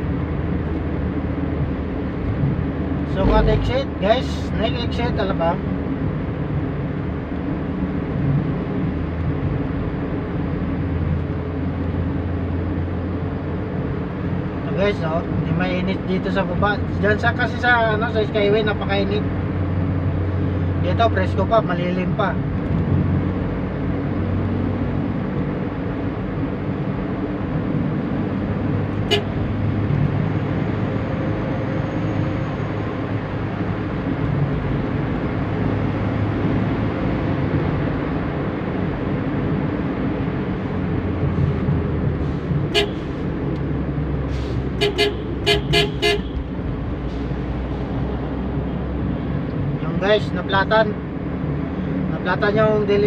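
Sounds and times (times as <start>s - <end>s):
vehicle road and engine noise: 0.0s - 53.0s
short horn toots: 29.1s - 29.3s, 42.7s - 43.1s, 44.8s - 46.4s.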